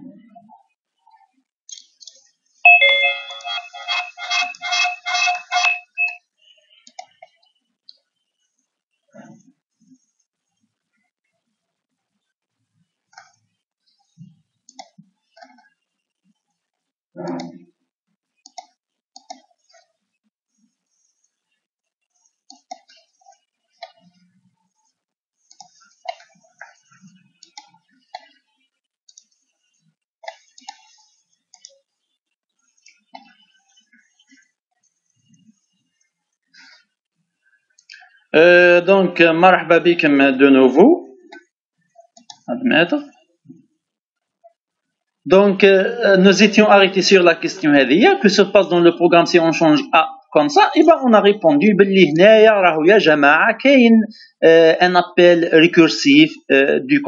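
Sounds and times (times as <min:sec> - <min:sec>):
electronic chiming ringtone melody: 0:02.7 - 0:06.2.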